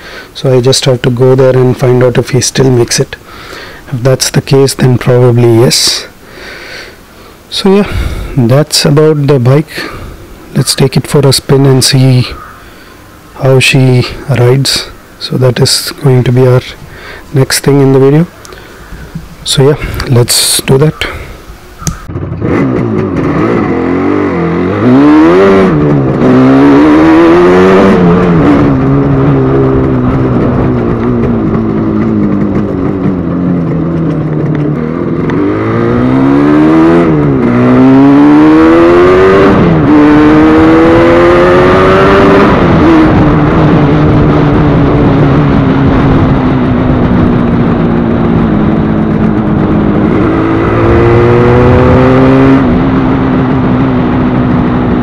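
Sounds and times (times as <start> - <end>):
two-stroke motorcycle engine revving: 21.8 - 55.0.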